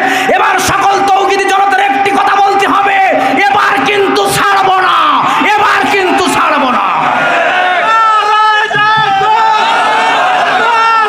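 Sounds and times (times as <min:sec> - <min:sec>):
man preaching through microphone: 0:00.0 - 0:09.7, 0:10.4 - 0:11.0.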